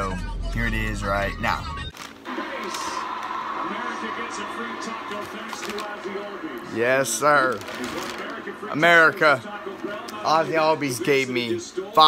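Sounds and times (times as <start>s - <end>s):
television soundtrack music with voices: 0.0s - 12.0s.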